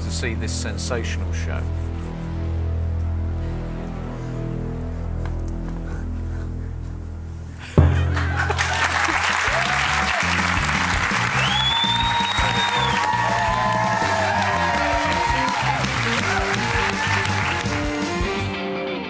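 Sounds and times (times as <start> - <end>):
upbeat game show music: 7.8 - 18.7
audience clapping and cheering: 7.9 - 18.5.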